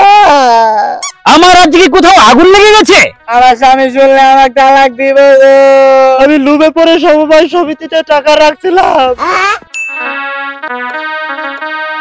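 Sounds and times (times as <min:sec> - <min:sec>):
man's voice: 0:00.0 - 0:09.3
keyboard background music: 0:01.0 - 0:12.0
bright ding: 0:09.7 - 0:10.1.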